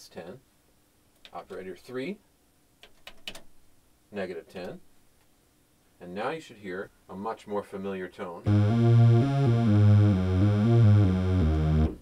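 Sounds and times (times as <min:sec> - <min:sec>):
buzzy synthesizer bass notes: 0:08.5 - 0:12.0.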